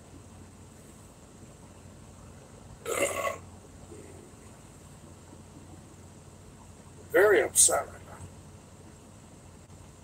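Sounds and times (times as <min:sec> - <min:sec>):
man burping: 0:02.8 - 0:03.4.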